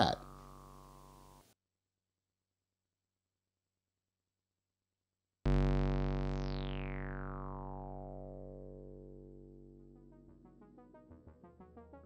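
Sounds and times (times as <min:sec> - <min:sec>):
low synth note darkening: 0:05.5 - 0:11.8.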